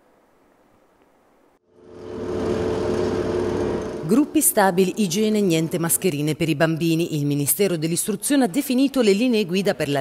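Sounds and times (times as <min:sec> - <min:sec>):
motor-like drone: 0:01.7 - 0:06.1.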